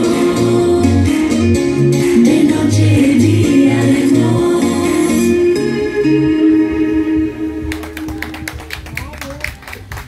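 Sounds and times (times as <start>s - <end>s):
instrumental pop backing track: 0.0s - 9.1s.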